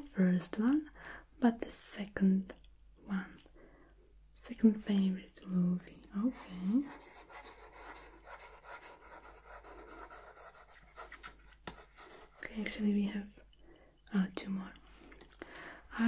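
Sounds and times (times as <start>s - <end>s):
pen scratching on paper: 6.2s - 12.4s.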